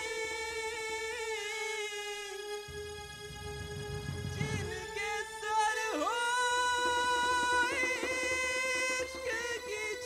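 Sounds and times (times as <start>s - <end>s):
sparse band backing: 2.7s - 5.4s.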